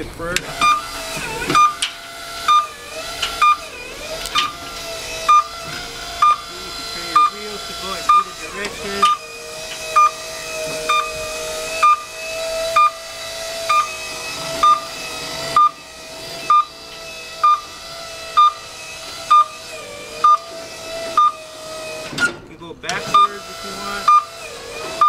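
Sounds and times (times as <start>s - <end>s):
electric motor whine: 0.0s - 25.0s
motion alarm beeps: 0.6s - 1.9s, 2.5s - 2.8s, 3.4s - 3.7s, 5.2s - 5.6s, 6.2s - 6.5s, 7.1s - 7.4s, 8.0s - 8.4s, 9.0s - 9.2s, 9.9s - 10.2s, 10.9s - 11.2s, 11.8s - 12.1s, 12.7s - 13.0s, 13.7s - 14.0s, 14.6s - 14.9s, 15.6s - 15.8s, 16.5s - 16.8s, 17.4s - 17.7s, 18.4s - 18.6s, 19.3s - 19.6s, 20.2s - 20.5s, 21.2s - 21.4s, 23.1s - 23.4s, 24.0s - 24.4s.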